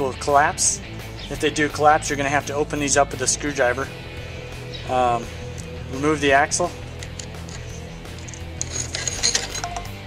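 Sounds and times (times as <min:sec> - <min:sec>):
light metallic clinks: 0:07.0 - 0:10.0.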